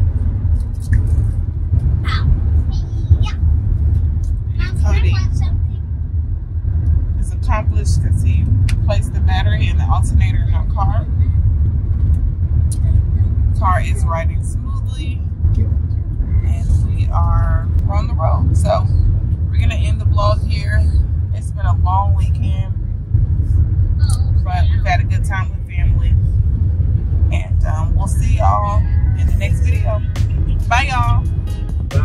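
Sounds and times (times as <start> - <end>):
road and engine rumble: 0.0 - 32.0
quiet talking: 2.0 - 3.4, 24.0 - 26.2, 27.3 - 32.0.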